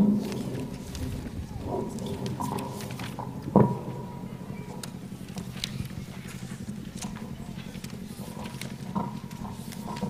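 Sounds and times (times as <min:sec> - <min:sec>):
microphone hum and rumble: 0:00.0 - 0:10.0.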